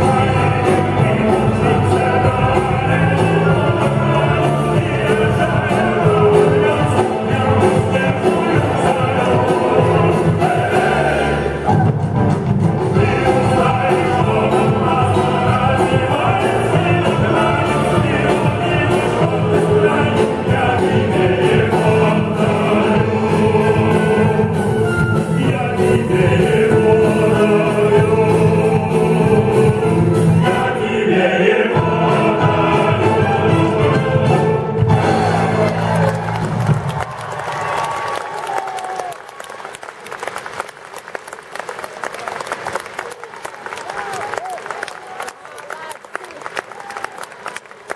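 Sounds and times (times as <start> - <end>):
male soloists singing: 0.0 - 11.6, 12.9 - 36.0
men's choir singing: 0.0 - 11.6, 12.9 - 36.0
military band playing: 0.0 - 37.2
audience applause: 35.0 - 47.9.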